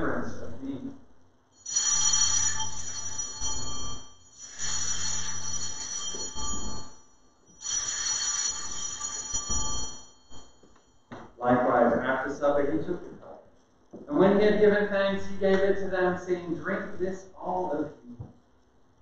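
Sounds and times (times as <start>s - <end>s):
altar bell ringing: 1.6s - 11.2s.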